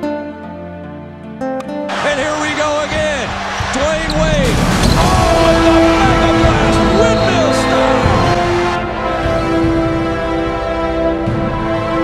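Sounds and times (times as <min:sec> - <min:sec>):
music: 0:00.0 - 0:12.0
voices: 0:02.0 - 0:08.4.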